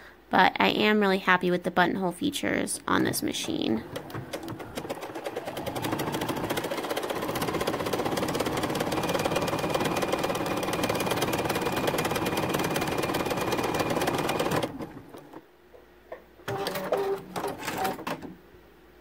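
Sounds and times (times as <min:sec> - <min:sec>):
sewing machine stitching: 0:03.4 - 0:15.4, 0:16.5 - 0:18.3.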